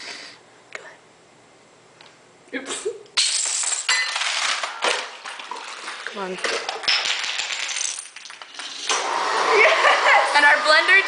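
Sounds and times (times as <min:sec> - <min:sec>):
blender motor running: 0:08.8 - 0:11.0.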